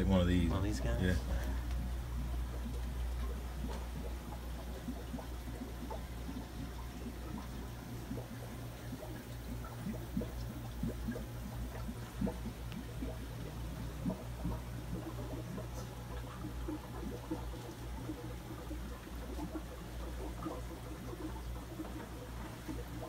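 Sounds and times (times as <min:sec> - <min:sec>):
aquarium water bubbling: 0:00.0 - 0:23.0
steady low hum: 0:00.0 - 0:23.0.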